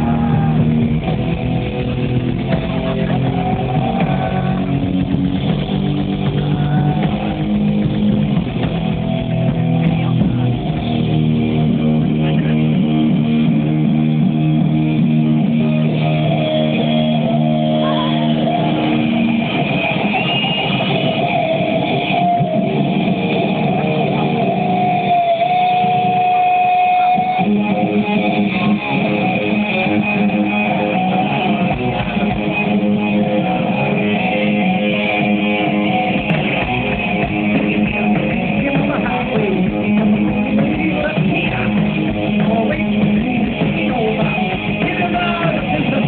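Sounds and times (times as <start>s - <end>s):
live heavy metal band: 0.0s - 46.0s
loud rock concert: 0.0s - 46.0s.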